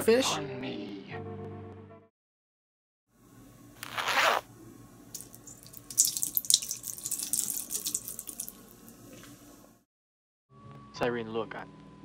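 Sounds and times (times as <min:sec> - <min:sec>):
water splashing into sink: 0:05.2 - 0:09.2
water trickling and dripping: 0:05.2 - 0:09.3.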